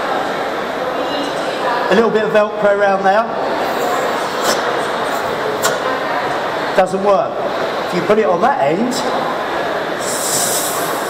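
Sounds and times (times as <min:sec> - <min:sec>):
air hissing from a leak: 0:10.0 - 0:11.0.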